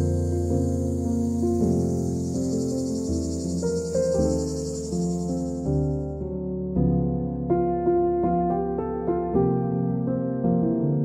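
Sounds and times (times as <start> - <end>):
high-pitched buzzing shimmer: 0.0 - 6.0.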